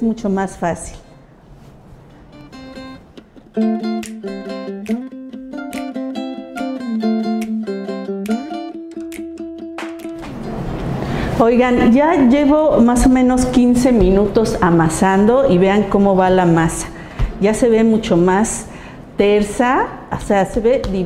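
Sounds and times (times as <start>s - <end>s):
plucked string instrument tune: 2.2s - 11.2s.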